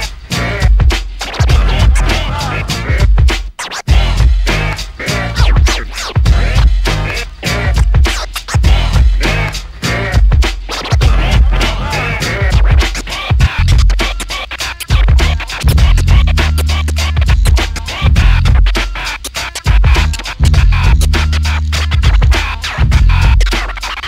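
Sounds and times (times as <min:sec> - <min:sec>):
beat with heavy bass: 0:00.0 - 0:24.0
turntable scratching: 0:00.0 - 0:24.0.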